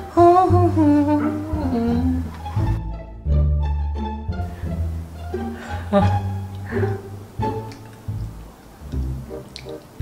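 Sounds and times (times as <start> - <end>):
person humming: 0.0 - 2.4, 5.4 - 7.2
light background music: 0.0 - 10.0.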